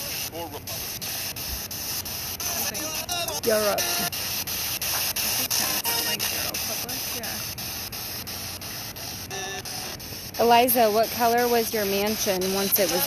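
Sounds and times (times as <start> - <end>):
faint radio voices: 0.0 - 13.0
radio static hiss: 0.0 - 13.0.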